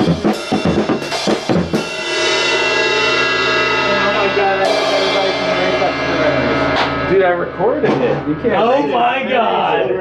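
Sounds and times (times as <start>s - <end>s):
drum hits: 0.0s - 10.0s
dense guitar chord ringing: 0.1s - 10.0s.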